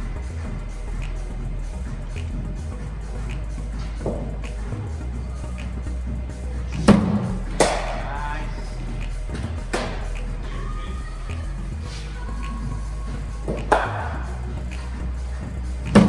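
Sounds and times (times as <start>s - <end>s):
background music: 0.0s - 16.0s
cricket ball thud: 6.8s - 8.0s
ball knocking: 6.8s - 8.1s
bat cracking on ball: 6.8s - 8.1s, 13.5s - 14.2s.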